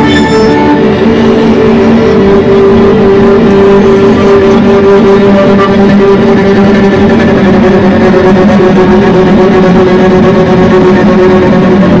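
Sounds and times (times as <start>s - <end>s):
distorted violin drone: 0.0s - 12.0s.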